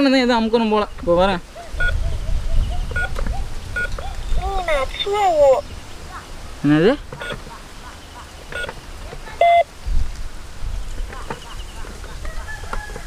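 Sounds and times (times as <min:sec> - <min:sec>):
electronic keypad beeps: 0:07.2 - 0:07.4, 0:08.5 - 0:08.8, 0:09.4 - 0:09.7.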